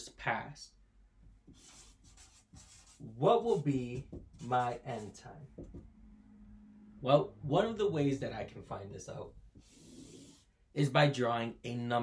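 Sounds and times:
marker scratching on paper: 1.5 - 5.8.

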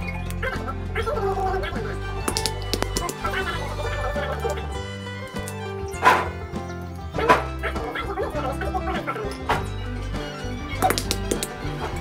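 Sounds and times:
background music: 0.0 - 12.0
walnut shells cracking: 2.2 - 3.3.

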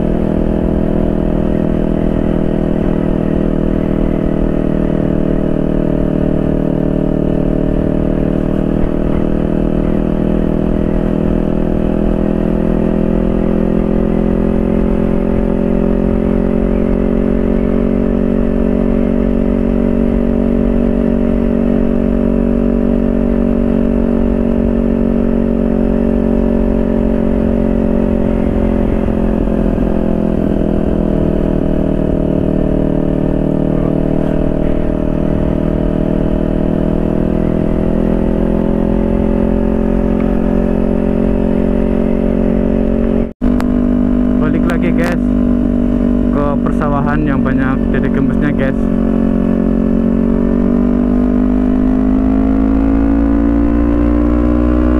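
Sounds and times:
motorcycle engine running: 0.0 - 54.9.

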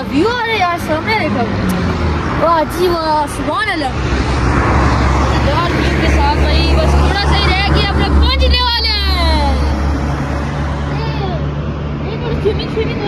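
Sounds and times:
vehicle passing by: 0.0 - 13.0.

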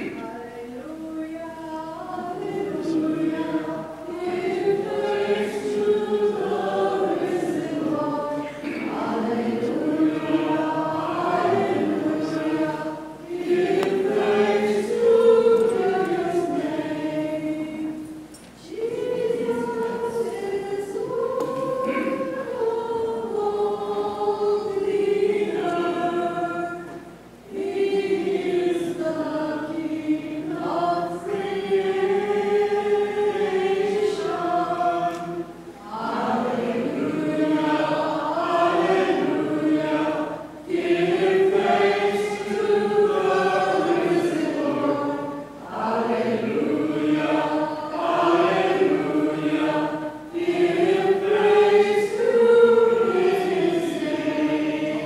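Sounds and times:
church choir singing a hymn: 0.0 - 55.0.

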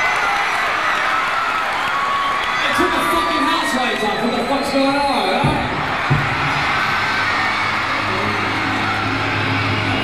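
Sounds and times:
arena crowd noise: 0.0 - 10.0
low drone from amplified instruments: 6.1 - 10.0.

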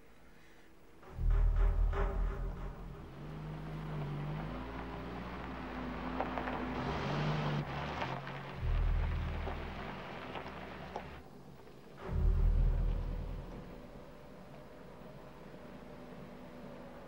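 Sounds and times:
loud low rumble: 1.0 - 5.4, 8.5 - 11.2, 11.9 - 15.2
car engine running low: 1.0 - 17.0.

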